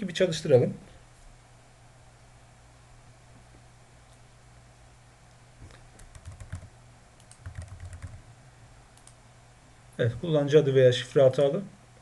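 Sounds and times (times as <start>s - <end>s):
computer keyboard keystrokes: 6.0s - 8.2s.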